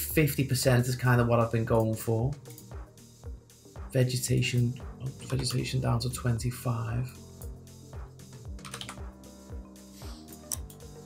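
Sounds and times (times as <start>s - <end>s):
quiet music with steady beat: 0.0s - 11.0s
keyboard typing clicks: 8.6s - 9.0s.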